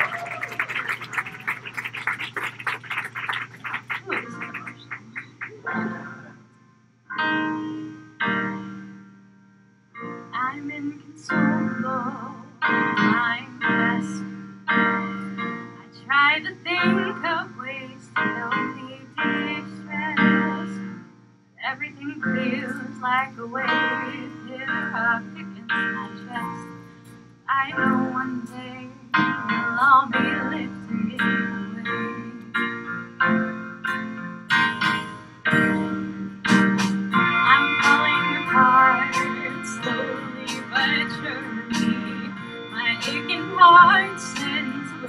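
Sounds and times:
applause: 0:00.0 - 0:05.7
keyboard accompaniment: 0:00.0 - 0:45.0
woman singing into a microphone: 0:10.4 - 0:14.2, 0:15.8 - 0:20.8, 0:21.6 - 0:26.7, 0:27.5 - 0:32.5, 0:37.4 - 0:45.0.

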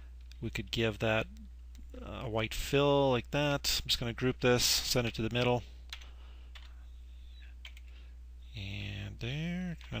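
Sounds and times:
low electrical hum: 0:00.0 - 0:10.0
keyboard and mouse clicks: 0:05.3 - 0:06.8, 0:07.6 - 0:07.9.

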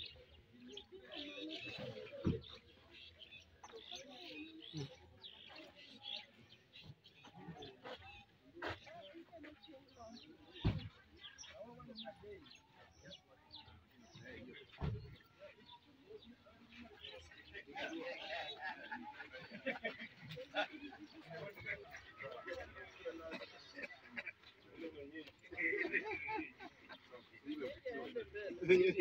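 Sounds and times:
distant people talking: 0:00.0 - 0:29.0.

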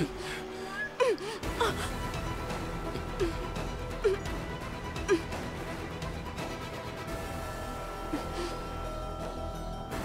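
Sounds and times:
woman gasping and crying out: 0:00.0 - 0:02.2, 0:08.0 - 0:08.8.

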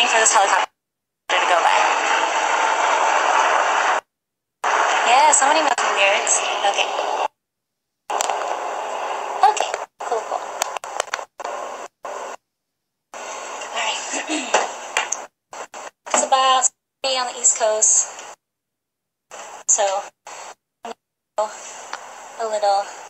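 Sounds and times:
thin noisy stream audio: 0:01.3 - 0:04.0, 0:04.6 - 0:07.3
woman's indistinct voice: 0:05.0 - 0:07.3, 0:09.4 - 0:10.6, 0:13.6 - 0:14.8, 0:19.7 - 0:20.1.

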